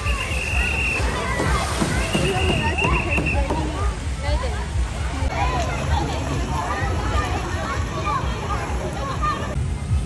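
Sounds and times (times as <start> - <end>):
pool water sloshing and splashing: 0.0 - 9.6
people's voices: 0.0 - 10.0.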